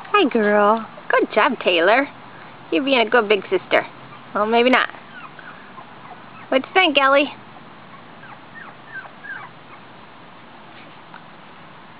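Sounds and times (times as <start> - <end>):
puppies whining: 4.0 - 6.6, 7.5 - 10.0.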